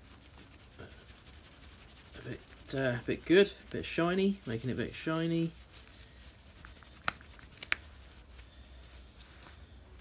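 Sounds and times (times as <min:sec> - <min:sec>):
cloth rubbing wood: 0:00.0 - 0:10.0.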